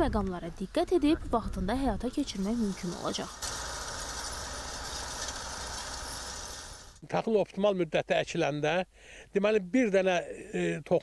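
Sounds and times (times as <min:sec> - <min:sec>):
tractor engine and seed drill: 0:02.1 - 0:07.0.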